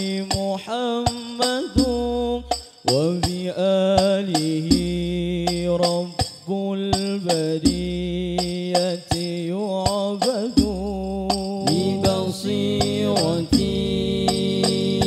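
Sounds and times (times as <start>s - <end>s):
man singing: 0.0s - 15.0s
frame drums struck: 10.2s - 15.0s.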